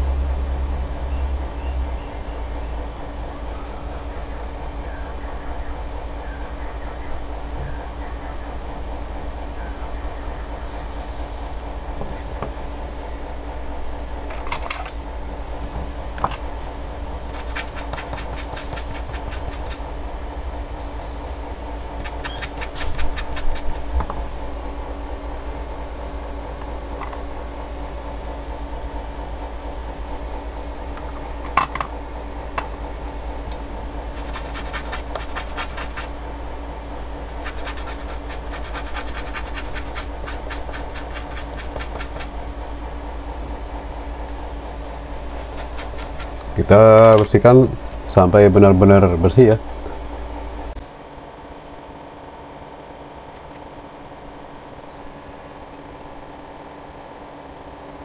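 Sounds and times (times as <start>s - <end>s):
steady hum: 0.0s - 58.0s
small tool scratching chip: 17.3s - 19.8s, 22.0s - 23.9s, 34.1s - 36.1s, 37.2s - 42.3s, 45.2s - 46.4s.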